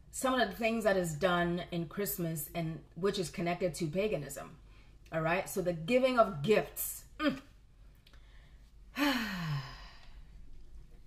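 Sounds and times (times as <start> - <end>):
woman sighing: 8.9 - 10.2.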